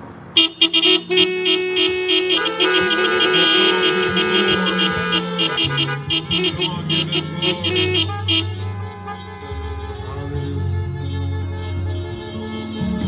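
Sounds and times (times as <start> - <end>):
sustained keyboard chords: 0.0 - 13.0.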